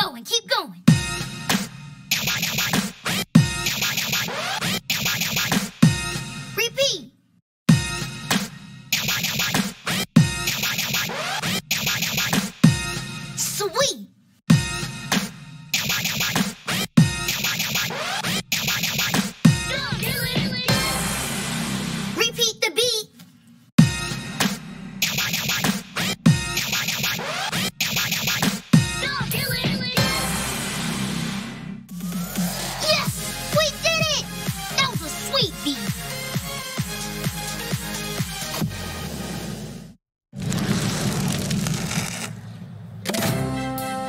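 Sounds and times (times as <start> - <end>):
short vocal phrase: 32.8 - 35.8.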